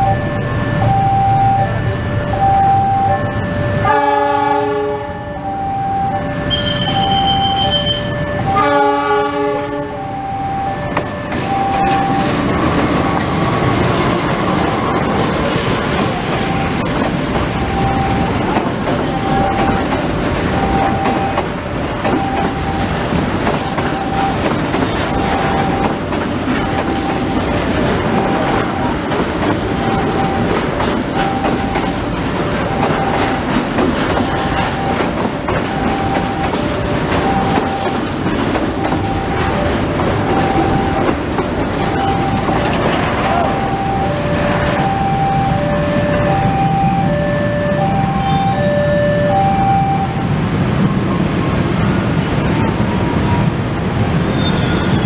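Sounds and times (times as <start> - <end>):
locomotive horn: 0.0 - 13.8, 42.0 - 50.2
level crossing alarm dinging: 0.0 - 53.6
tank wagons rumbling past: 10.8 - 55.0
wheels clicking over rail joints: 10.9 - 45.1.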